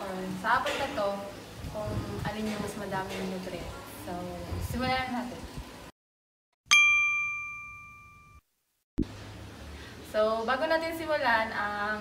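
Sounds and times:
bright bell-like ding: 6.7 - 8.4.

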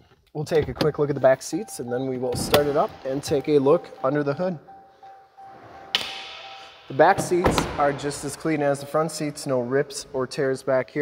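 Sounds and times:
faint steady tone: 1.6 - 8.0
car door click: 2.3 - 2.9, 7.2 - 8.2.

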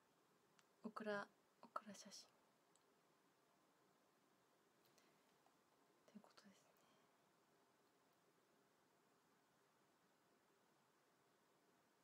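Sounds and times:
faint whisper: 0.8 - 2.4, 4.9 - 7.2.

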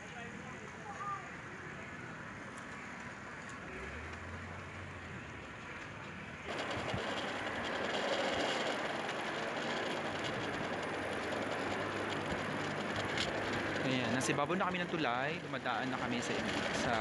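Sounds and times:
trolley wheels rattling on rails: 6.0 - 17.0.

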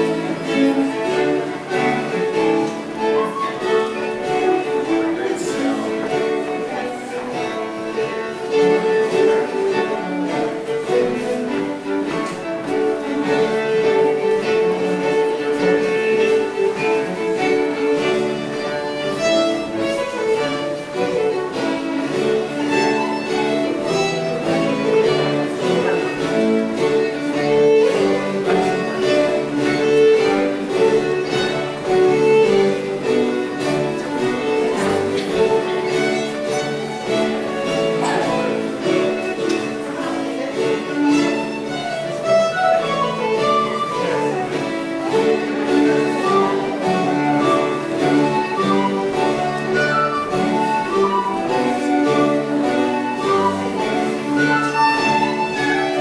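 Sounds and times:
early music ensemble playing: 0.0 - 56.0.

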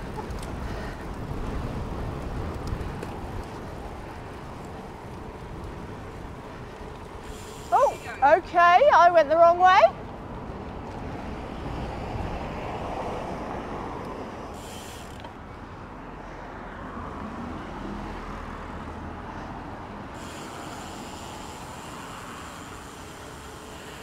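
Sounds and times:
wind rumbling on microphone: 0.0 - 14.8
bike tyres rolling on tarmac: 0.0 - 24.0.

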